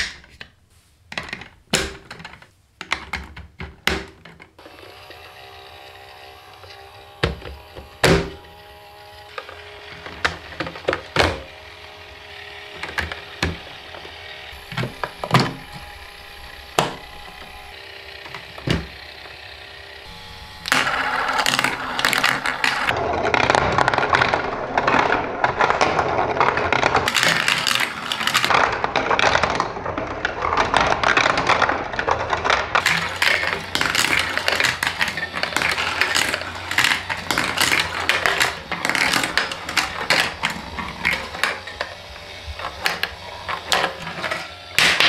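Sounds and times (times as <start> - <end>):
plastic pieces snapping together: 0.0 - 4.5, 24.8 - 45.0
marbles rattling down plastic track: 20.5 - 45.0.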